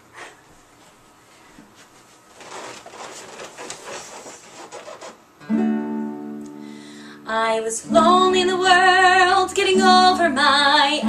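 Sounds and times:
rustling and scraping handling: 0.8s - 5.3s.

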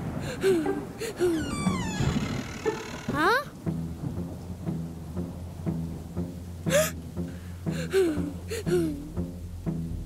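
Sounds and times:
low rumble of thunder: 0.0s - 2.8s, 3.5s - 7.2s
rain: 0.0s - 10.0s.

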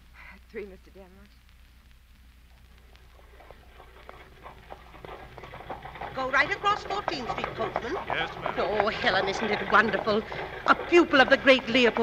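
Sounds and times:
horse hooves clip-clopping: 2.5s - 12.0s.

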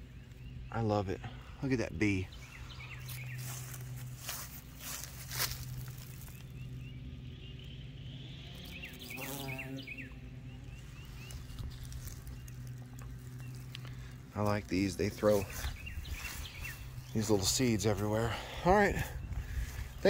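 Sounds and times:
small bird chirping: 2.0s - 20.0s
bumblebee buzzing: 2.8s - 18.2s.

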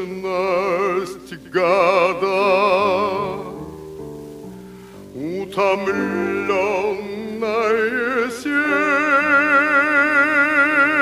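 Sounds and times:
man singing with vibrato: 0.0s - 4.3s, 5.0s - 11.0s
soft musical accompaniment: 0.0s - 11.0s.

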